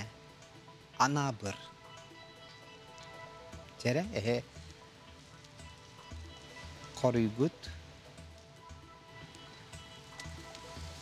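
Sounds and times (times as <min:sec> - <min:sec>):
quiet quiz show background music: 0:00.0 - 0:11.0.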